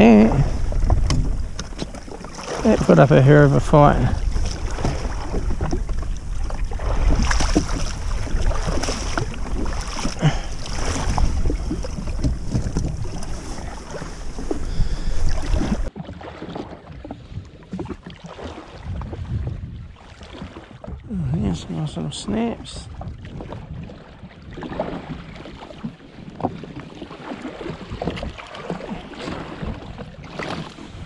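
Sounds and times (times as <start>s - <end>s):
wind buffeting microphone: 0.0s - 15.9s, 18.8s - 20.0s, 22.8s - 25.4s
water slapping against hull: 0.0s - 31.0s.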